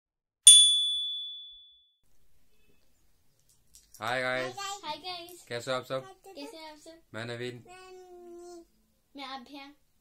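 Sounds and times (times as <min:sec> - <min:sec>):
bell-like chime ding: 0:00.5 - 0:02.0.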